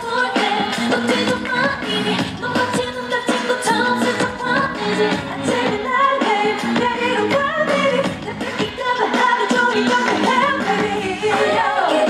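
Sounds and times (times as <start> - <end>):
dance song with female group vocals: 0.0 - 12.0.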